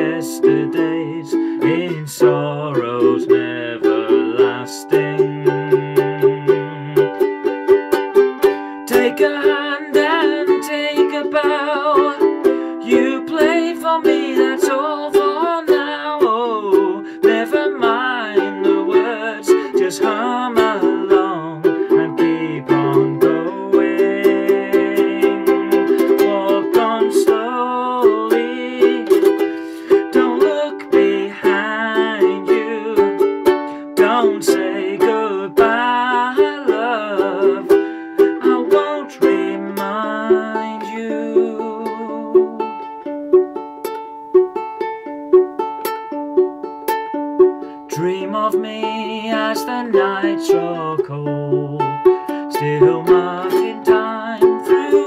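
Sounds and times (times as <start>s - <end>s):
ukulele picked notes: 0.0s - 55.0s.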